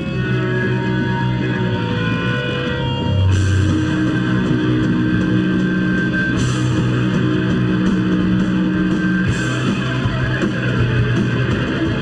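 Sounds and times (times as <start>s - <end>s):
drums and cymbals: 0.0s - 12.0s
electric guitars holding chords: 0.0s - 12.0s.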